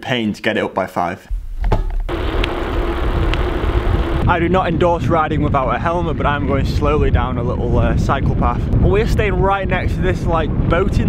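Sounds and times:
steady hum: 1.3s - 5.4s
wind rumble on microphone: 1.3s - 11.0s
bicycle tyres rolling on bumpy path: 1.8s - 11.0s.

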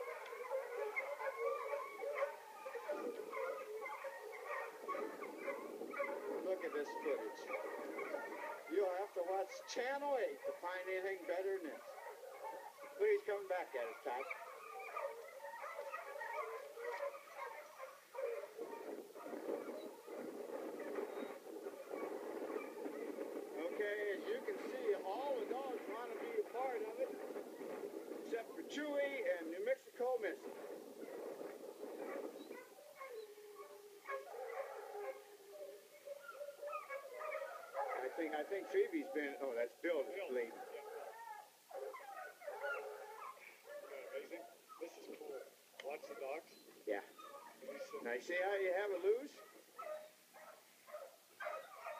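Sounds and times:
mountain lion cries: 0.0s - 23.2s, 32.1s - 46.4s, 49.3s - 51.9s
hounds barking and baying: 0.0s - 51.9s.

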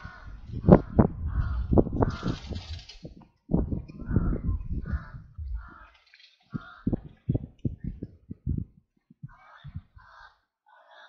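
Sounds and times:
crows cawing: 0.0s - 2.6s, 4.0s - 7.8s, 9.3s - 11.0s
low rumble: 0.0s - 5.9s, 6.6s - 10.1s.

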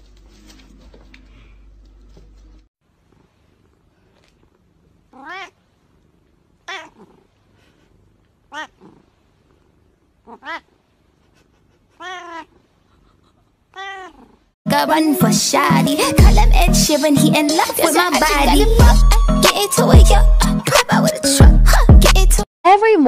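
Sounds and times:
cat meowing: 5.1s - 5.6s, 6.6s - 7.2s, 8.5s - 9.0s, 10.2s - 10.7s, 12.0s - 12.6s, 13.7s - 14.4s.

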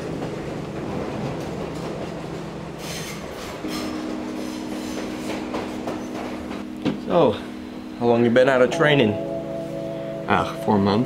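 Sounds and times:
diesel locomotive engine drone: 0.0s - 11.0s.

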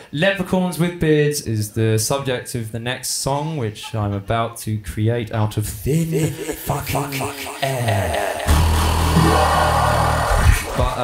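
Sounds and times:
loud low synthesizer drone: 6.7s - 10.7s.

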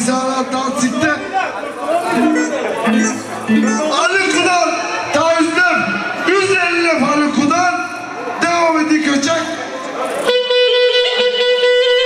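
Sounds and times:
person speaking: 1.9s - 9.5s.

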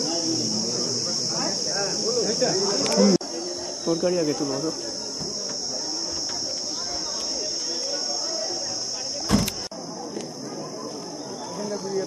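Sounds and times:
faint voices murmuring: 0.0s - 12.0s
insects droning: 0.0s - 12.0s.

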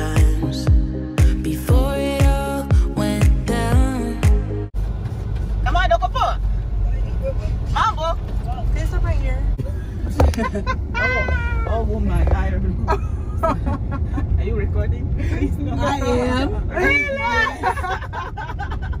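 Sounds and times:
car cabin road rumble: 4.8s - 19.0s
people talking: 14.4s - 18.0s.

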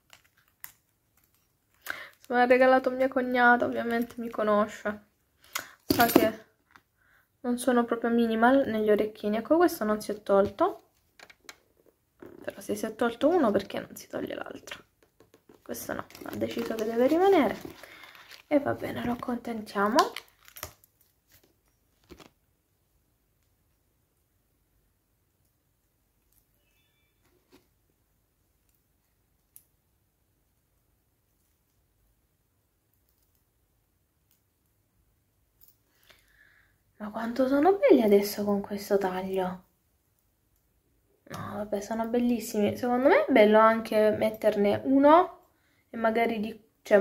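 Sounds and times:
rustle of fingers handling earring: 0.0s - 4.4s, 15.2s - 22.4s, 32.8s - 34.8s.

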